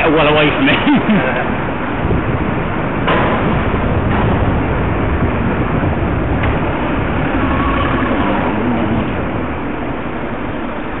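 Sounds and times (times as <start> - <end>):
street traffic rushing: 0.0 - 11.0
wind noise on microphone: 1.0 - 11.0
lorry engine running: 4.6 - 11.0
faint whine: 6.5 - 11.0.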